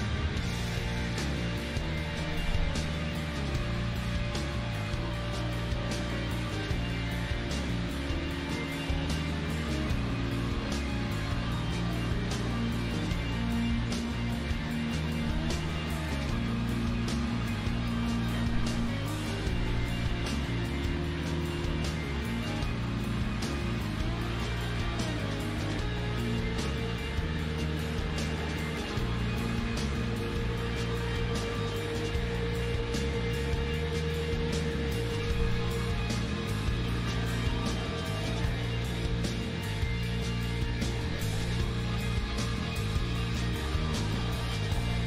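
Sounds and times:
drum beat with cymbals: 0:00.0 - 0:45.0
live rock band playing: 0:00.0 - 0:45.0.

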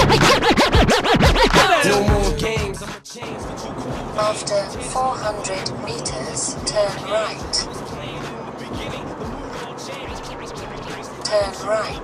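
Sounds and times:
car engine: 0:00.0 - 0:02.6, 0:03.2 - 0:12.0
song on car stereo: 0:00.0 - 0:12.0
road noise: 0:01.8 - 0:12.0.

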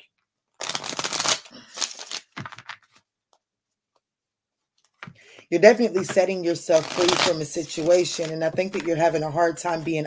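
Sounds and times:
cards being shuffled: 0:00.6 - 0:03.0, 0:06.0 - 0:10.0.

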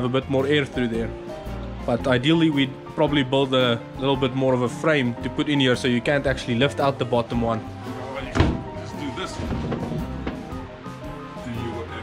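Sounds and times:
background music: 0:00.0 - 0:12.0
wooden hatch board knock: 0:08.3 - 0:10.7.

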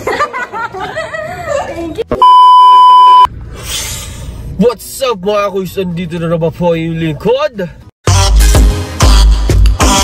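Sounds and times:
electronic beep tone: 0:02.2 - 0:03.3.

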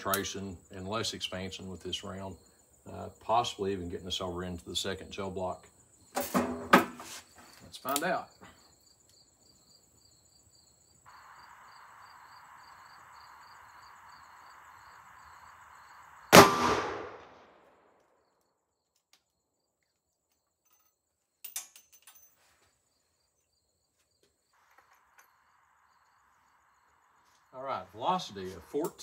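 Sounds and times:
revolver gunshot with echo: 0:16.3 - 0:17.7.

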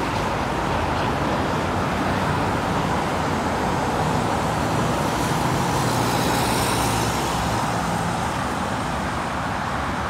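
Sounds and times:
highway traffic: 0:00.0 - 0:10.0.

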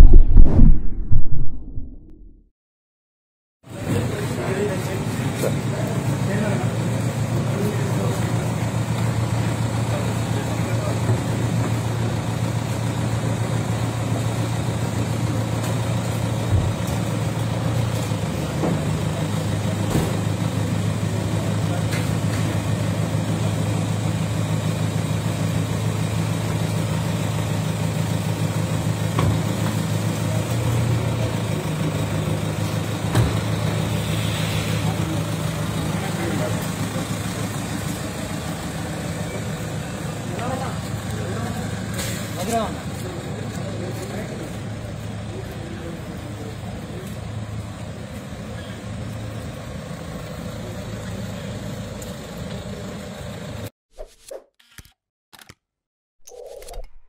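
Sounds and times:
people talking: 0:03.7 - 0:12.2, 0:21.0 - 0:22.6, 0:30.1 - 0:32.4, 0:34.1 - 0:48.9
car engine idling: 0:03.7 - 0:53.7.

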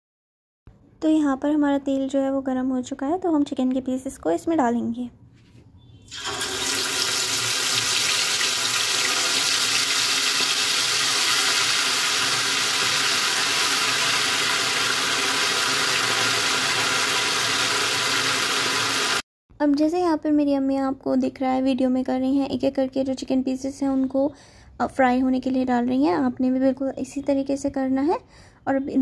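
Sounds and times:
chicken deep-frying in oil: 0:06.1 - 0:19.2.

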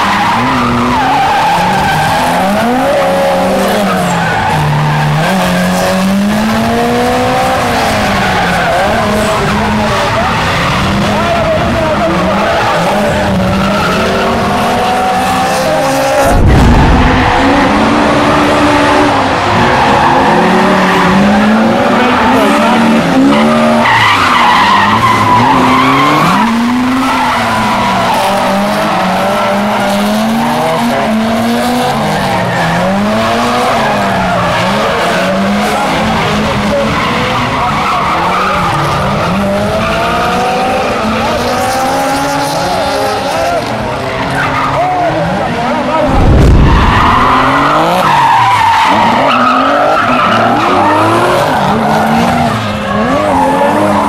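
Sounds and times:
car engines revving: 0:00.0 - 0:54.0
low thump: 0:16.2 - 0:17.6, 0:46.1 - 0:47.3.

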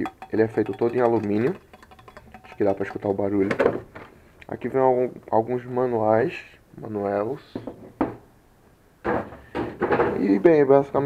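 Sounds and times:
metal chassis knocking on wood: 0:00.0 - 0:03.8.

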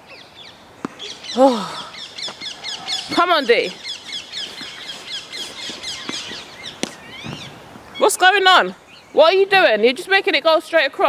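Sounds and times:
birds chirping: 0:00.0 - 0:10.9.

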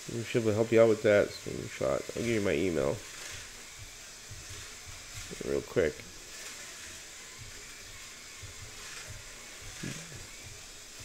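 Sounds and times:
low room noise: 0:00.0 - 0:11.0
slot car hissing on track: 0:00.0 - 0:11.0.

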